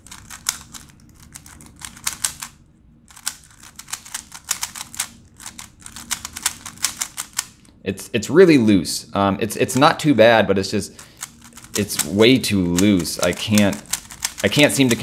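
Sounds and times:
puzzle cube plastic clicks: 0.0s - 7.7s, 11.0s - 15.0s.

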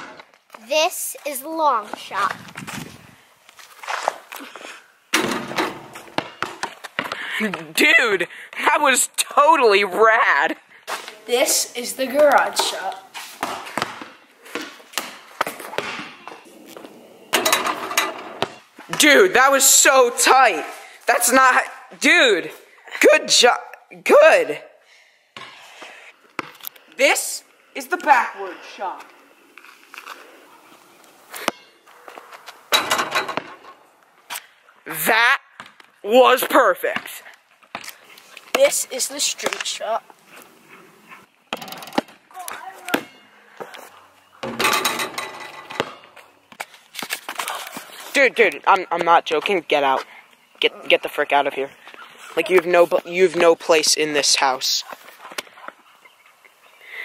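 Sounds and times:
basketball hitting backboard and hoop: 5.1s - 7.2s, 13.4s - 16.4s, 17.3s - 18.6s, 32.8s - 33.6s, 44.4s - 46.1s.

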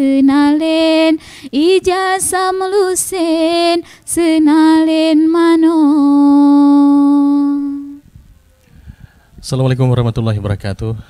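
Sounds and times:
woman singing unaccompanied: 0.0s - 8.0s.

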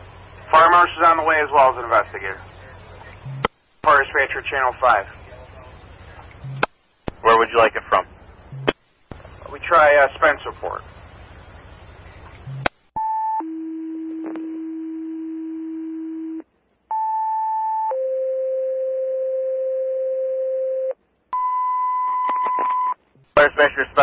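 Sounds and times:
two-tone pager tones over radio: 21.4s - 23.0s.

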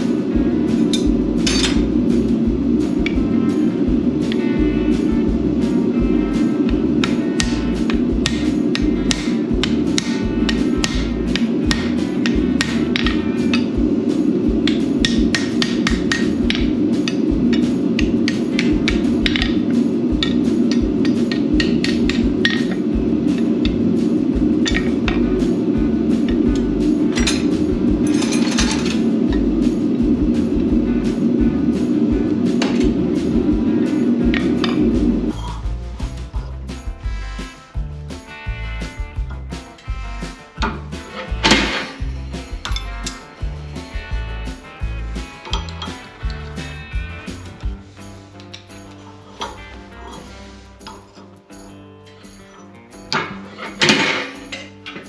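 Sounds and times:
hammer striking steel on anvil: 0.0s - 31.2s, 31.8s - 36.4s, 39.2s - 43.4s, 45.2s - 47.5s, 52.1s - 55.0s
background music: 0.0s - 55.0s.

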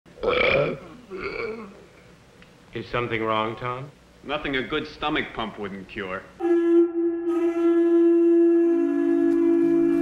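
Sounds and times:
man belching: 0.2s - 1.8s.

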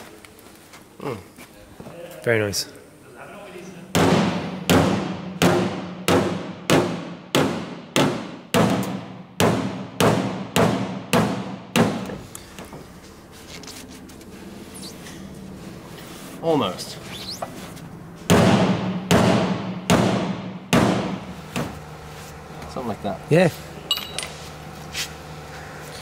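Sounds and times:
hammer striking steel panel: 4.0s - 12.2s, 18.3s - 21.7s.

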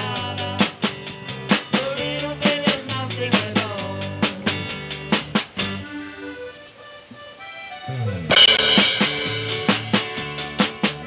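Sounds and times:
live band playing: 0.0s - 11.0s
low sliding note: 7.8s - 9.7s.

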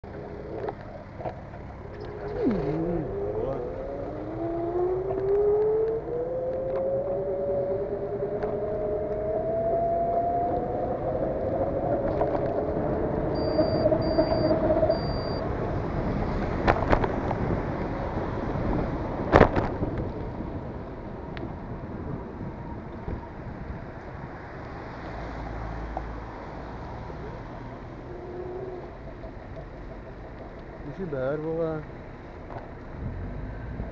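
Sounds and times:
vehicle whine speeding up: 0.1s - 33.9s
short high beeps: 13.4s - 15.4s.

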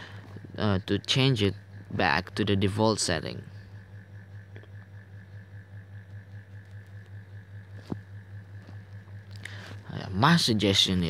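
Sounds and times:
low pulsing hum: 0.0s - 11.0s.

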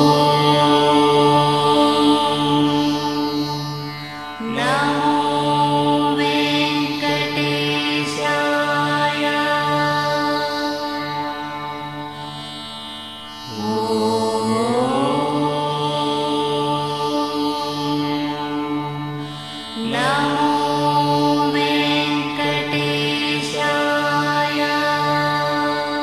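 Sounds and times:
person chanting: 0.0s - 12.1s, 13.4s - 26.0s
steady drone: 0.0s - 12.5s, 13.2s - 26.0s.

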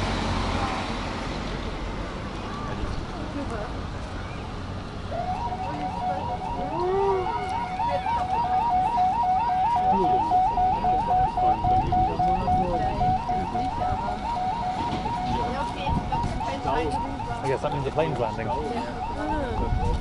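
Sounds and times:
low traffic: 0.0s - 20.0s
electronic warning siren warbling: 5.1s - 20.0s
wind noise: 10.5s - 17.1s, 18.9s - 20.0s.

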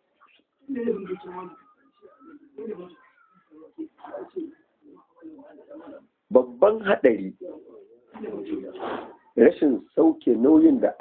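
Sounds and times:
man speaking in low phrases: 9.4s - 11.0s.

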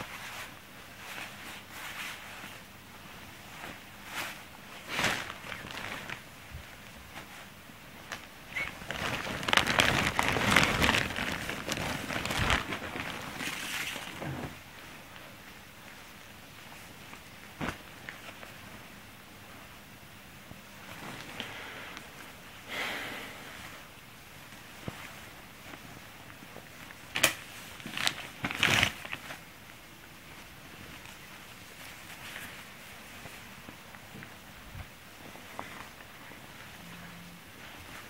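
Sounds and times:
fabric swishing: 0.0s - 14.6s
clothes and plastic sack rustling: 0.0s - 19.8s, 20.4s - 38.0s
plastic sack crinkling: 3.5s - 14.6s, 27.0s - 29.5s.

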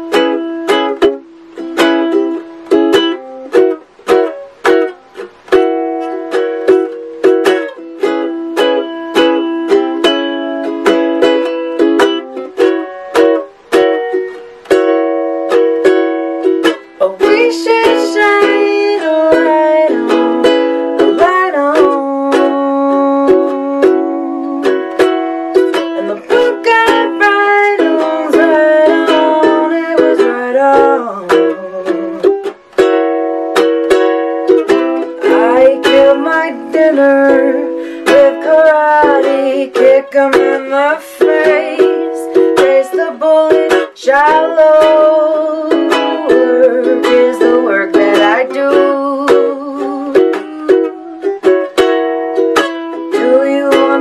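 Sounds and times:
ukulele plucked notes: 0.0s - 54.0s.

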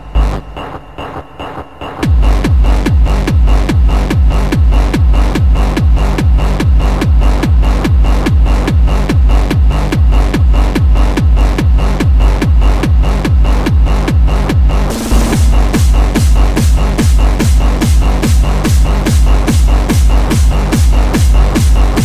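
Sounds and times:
dance synths: 0.0s - 22.0s
heavy kick drum: 0.0s - 22.0s.

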